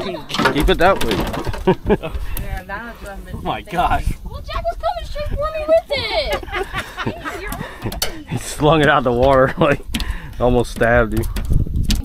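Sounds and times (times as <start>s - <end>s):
people exclaiming and laughing: 0.0s - 10.2s.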